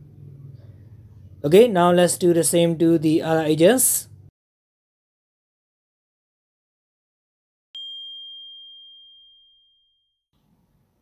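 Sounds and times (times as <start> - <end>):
bell-like ding: 7.8 - 10.3.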